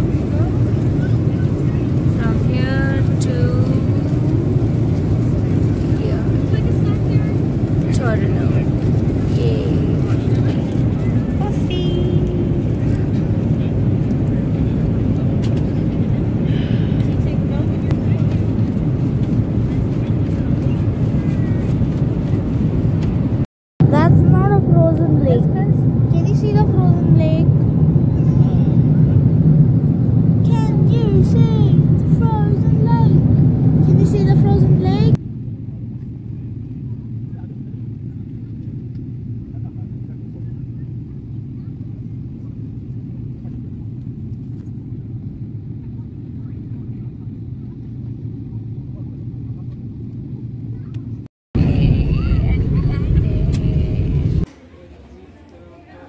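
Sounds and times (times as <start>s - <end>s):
jet airliner cabin drone: 0.0s - 56.0s
loud voices: 51.6s - 56.0s.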